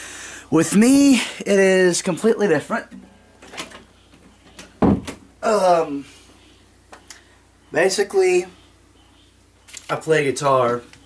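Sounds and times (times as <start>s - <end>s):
guitar knocking thump: 4.8s - 5.2s
faint handling noises: 9.6s - 11.0s.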